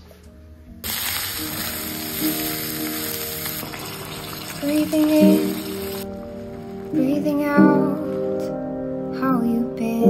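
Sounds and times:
background music: 0.0 - 10.0
stew sizzling in a pan: 0.8 - 7.0.

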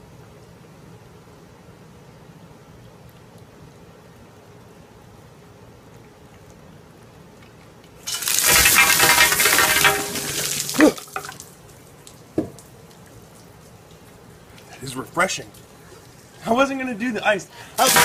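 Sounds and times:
ice water splashing: 8.0 - 14.2, 17.6 - 18.0.

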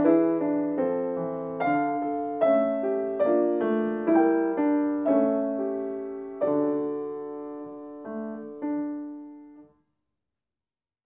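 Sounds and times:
piano chord: 0.0 - 9.7.

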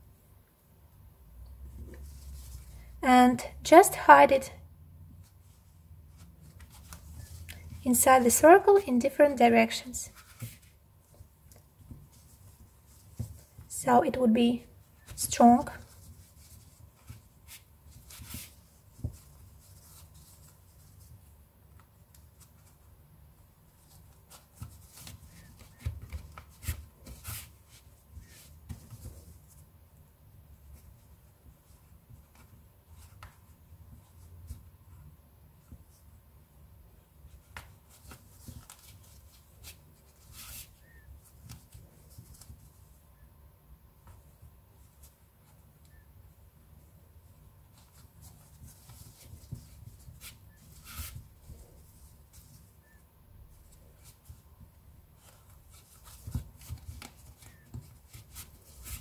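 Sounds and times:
fabric rustling: 1.6 - 3.0, 5.1 - 8.8, 9.8 - 13.7, 14.7 - 36.2, 43.9 - 59.0
yarn rustling and scratching: 14.7 - 36.0.

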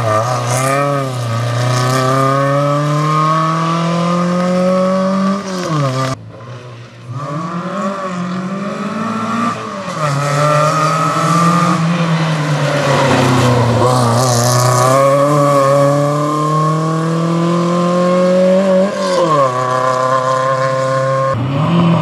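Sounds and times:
rally car engine accelerating: 0.0 - 22.0.

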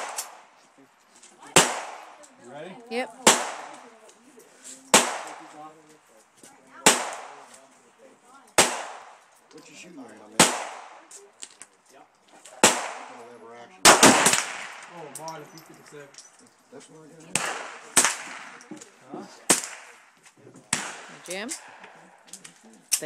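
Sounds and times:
pistol shots with echo: 1.5 - 2.2, 3.2 - 3.8, 4.9 - 5.6, 6.8 - 7.5, 8.6 - 9.2, 10.4 - 11.1, 12.6 - 15.0, 17.3 - 18.7, 19.5 - 20.0, 20.7 - 21.9.

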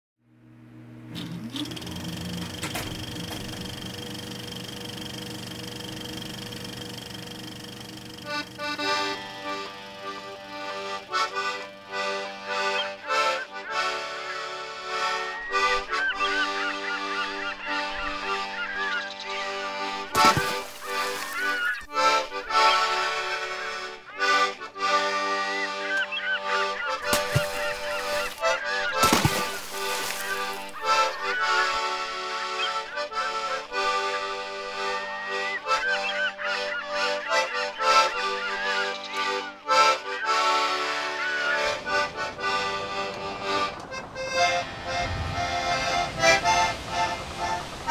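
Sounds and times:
mechanical hum and whir: 0.2 - 11.1
accordion music: 1.1 - 47.9
short gliding high calls: 29.9 - 32.0.

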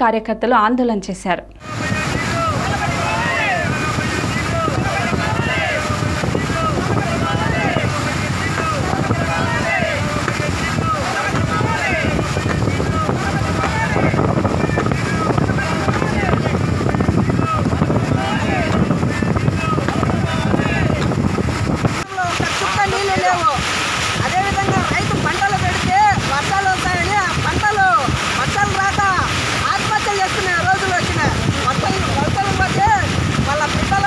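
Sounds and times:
men shouting slogans: 1.6 - 34.0
water rushing over weir: 1.6 - 34.0
wind on microphone: 1.6 - 34.0.

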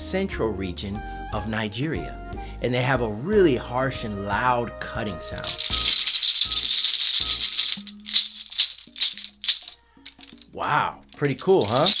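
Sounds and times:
seed pods rattling: 5.4 - 10.5, 11.5 - 12.0.

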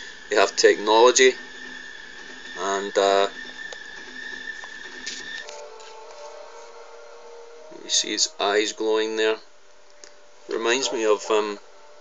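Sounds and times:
hiss: 0.0 - 5.6
faint film soundtrack: 0.0 - 12.0.

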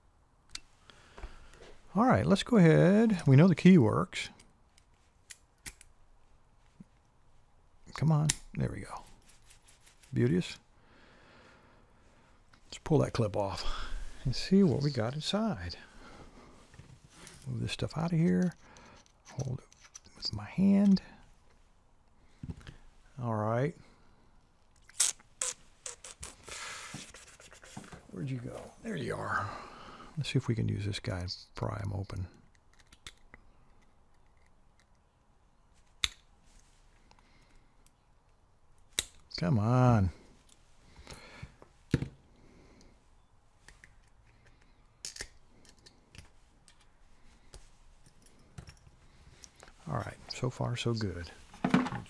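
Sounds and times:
metallic clicks and scrapes: 17.2 - 20.3.

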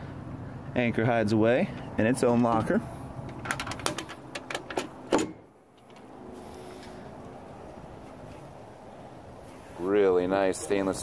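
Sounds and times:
hatch clicks and rattles: 3.3 - 4.9.

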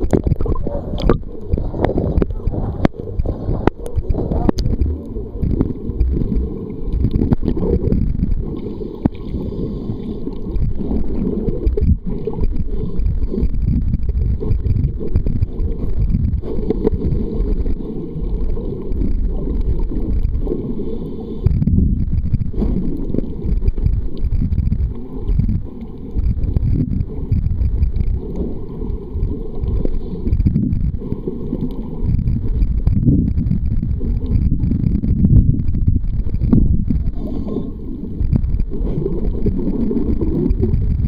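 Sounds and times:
muffled underwater rumble: 0.0 - 41.0.

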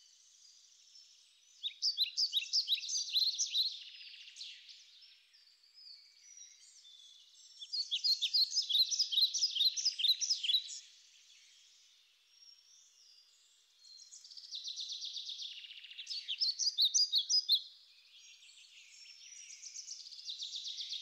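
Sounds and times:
songbirds chirping: 0.0 - 21.0.

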